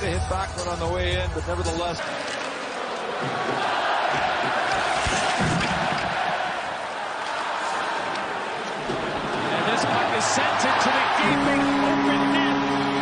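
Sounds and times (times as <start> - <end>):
arena crowd voices: 2.0 - 13.0.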